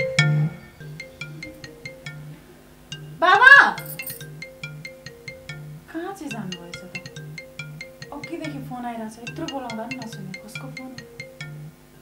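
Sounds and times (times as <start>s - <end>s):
pulsing low tone: 0.0s - 3.3s
phone ringtone tinkling melody: 0.0s - 11.9s.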